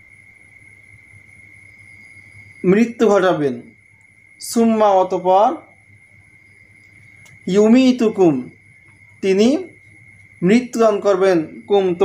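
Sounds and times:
high-pitched whine: 0:00.0 - 0:12.0.

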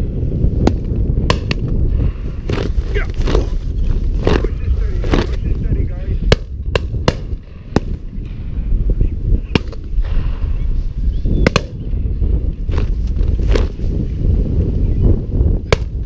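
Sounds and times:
wind rumble on microphone: 0:00.0 - 0:16.0.

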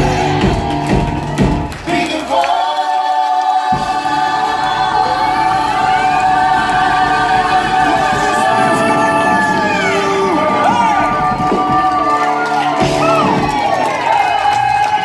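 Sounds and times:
group singing in harmony: 0:01.9 - 0:13.8
live band playing: 0:05.7 - 0:15.0.

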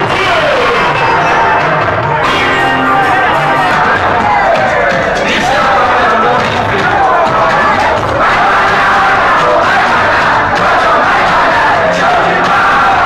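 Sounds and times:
crowd shouting and singing along: 0:00.0 - 0:13.0
loud dance music: 0:00.0 - 0:13.0.

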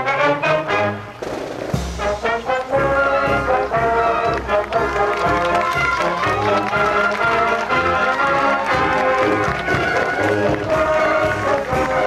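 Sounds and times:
marching band playing a march: 0:00.0 - 0:12.0.

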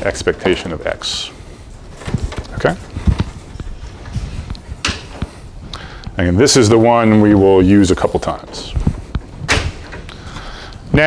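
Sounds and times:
man speaking: 0:00.0 - 0:01.4, 0:02.5 - 0:02.9, 0:06.2 - 0:08.8.

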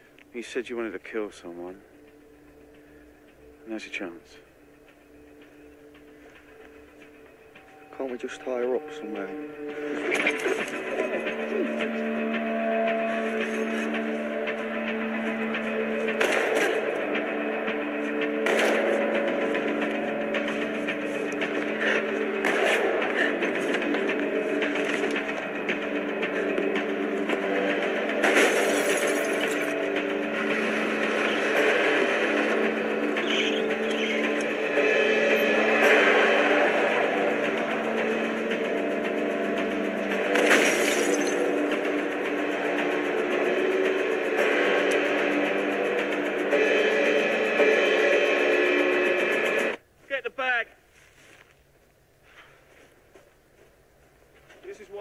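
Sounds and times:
tense sustained film score: 0:00.0 - 0:49.8.

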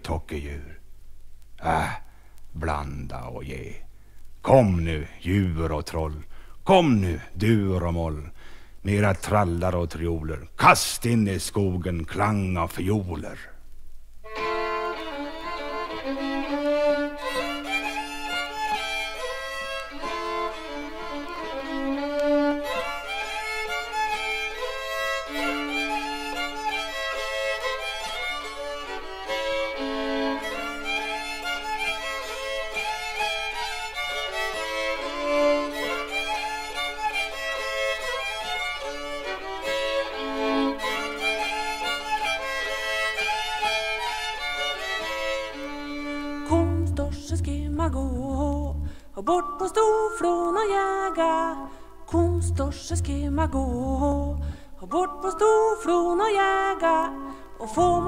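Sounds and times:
folk fiddle music: 0:14.3 - 0:49.1, 0:50.0 - 0:58.0.

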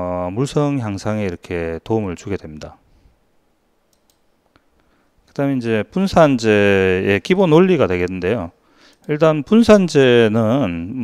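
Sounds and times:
computer mouse clicks: 0:03.9 - 0:04.7.

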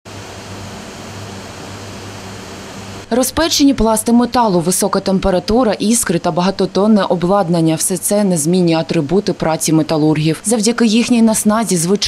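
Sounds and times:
industrial furnace roar: 0:00.1 - 0:09.8.

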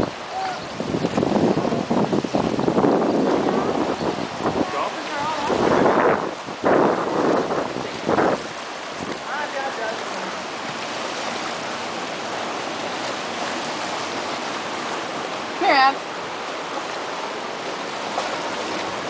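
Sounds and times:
sea water rushing into rock pool: 0:00.0 - 0:19.0.

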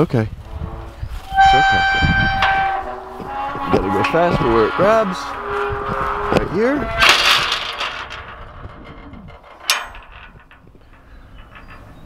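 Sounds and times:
faint metal rattling: 0:00.0 - 0:12.0
metal gate clank: 0:00.5 - 0:12.0.

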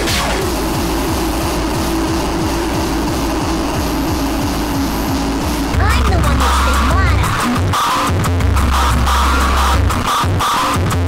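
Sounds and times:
drum and bass music: 0:00.0 - 0:11.0.

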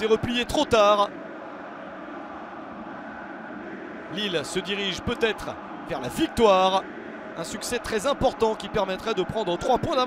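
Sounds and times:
football match ambience: 0:00.0 - 0:10.0.

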